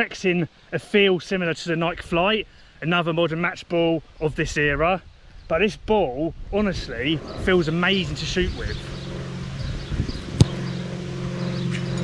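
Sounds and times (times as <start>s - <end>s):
steady low hum: 6.6s - 12.0s
boot striking football: 10.4s - 10.6s.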